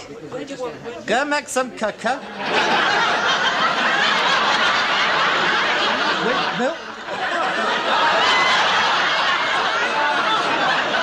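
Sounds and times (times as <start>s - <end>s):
studio audience laughing: 2.2s - 11.0s.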